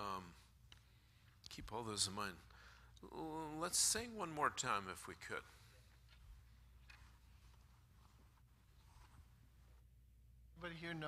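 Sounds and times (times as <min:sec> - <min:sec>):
low steady hum: 0:00.0 - 0:11.0
faint rustles: 0:05.5 - 0:10.0.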